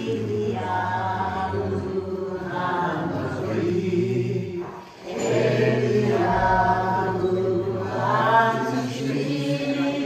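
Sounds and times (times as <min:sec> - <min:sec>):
group singing unaccompanied: 0:00.0 - 0:10.0.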